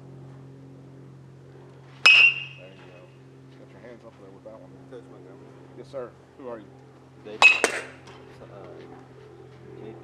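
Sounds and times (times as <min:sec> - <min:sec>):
metal bat hitting ball: 0:02.0 - 0:02.8, 0:07.4 - 0:08.0.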